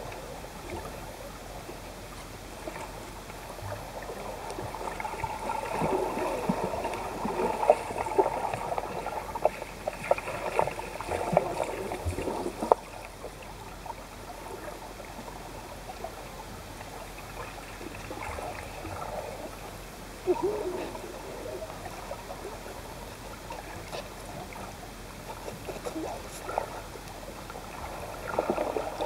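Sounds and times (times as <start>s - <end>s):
underwater churning from kicking: 3.7s - 12.9s, 27.7s - 29.0s.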